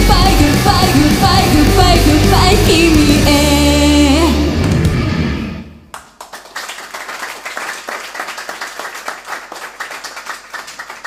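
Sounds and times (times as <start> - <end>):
live pop-rock song: 0.0 - 5.6
audience applauding: 5.9 - 11.0.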